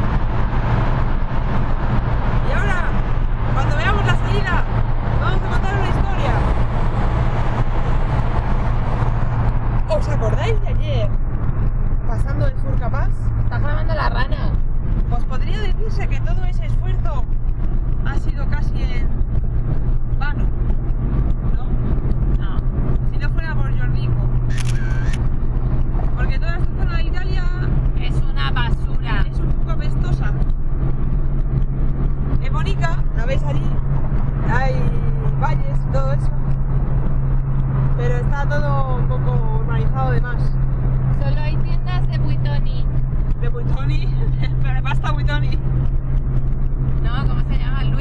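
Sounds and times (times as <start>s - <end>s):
car engine and road drone: 0.0s - 48.0s
women's voices: 41.2s - 42.9s, 47.0s - 48.0s.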